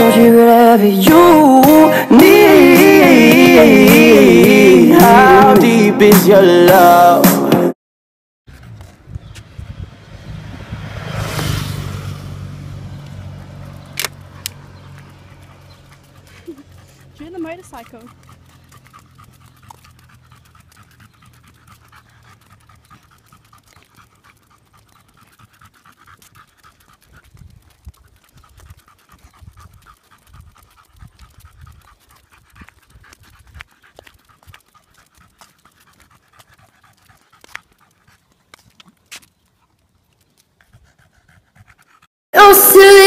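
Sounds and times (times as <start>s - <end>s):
motorcycle engine humming: 8.6s - 20.4s
dog panting: 13.7s - 42.1s.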